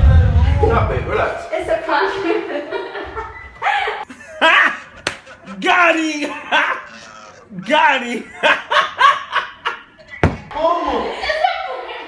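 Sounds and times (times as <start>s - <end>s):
man laughing loudly: 4.0s - 10.5s.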